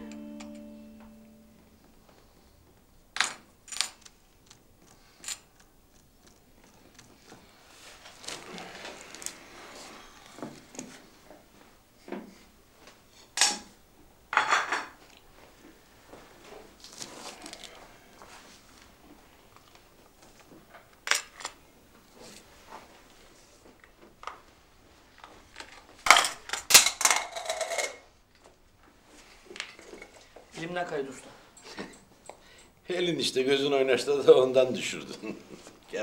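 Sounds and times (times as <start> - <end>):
plates and cutlery clinking: 14.4 - 15.0.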